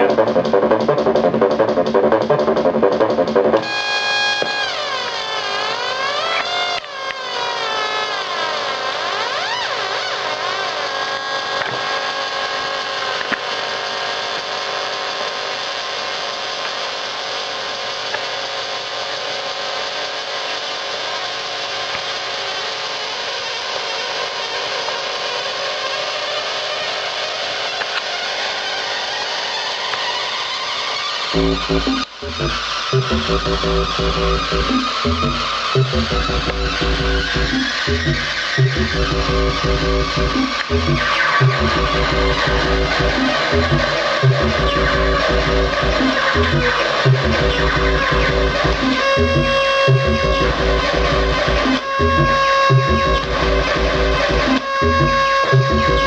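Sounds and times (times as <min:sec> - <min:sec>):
harsh electronic synth buzz: 0:00.0 - 0:56.0.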